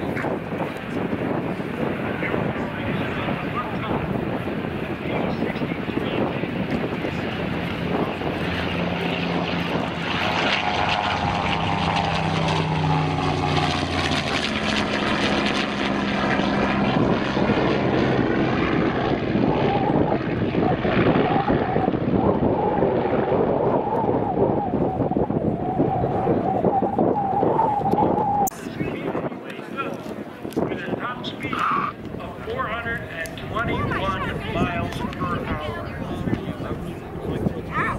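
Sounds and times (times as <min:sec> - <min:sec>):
propeller plane engine drone: 0:00.0 - 0:37.9.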